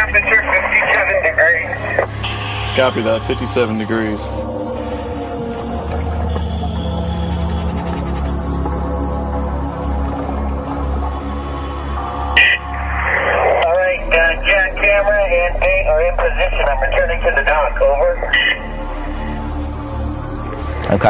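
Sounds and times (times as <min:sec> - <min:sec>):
radio beeps: 0:00.0 - 0:03.4, 0:12.4 - 0:18.8
warbling radio voice: 0:00.0 - 0:03.9, 0:12.4 - 0:18.7
low music drone: 0:00.0 - 0:21.0.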